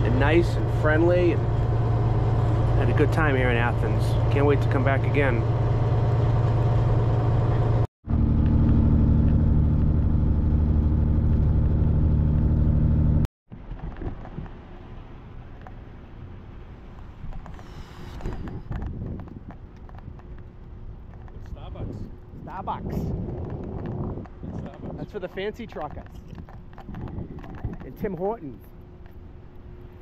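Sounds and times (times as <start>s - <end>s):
truck diesel engine drone: 0.0s - 13.3s
wind: 0.0s - 30.0s.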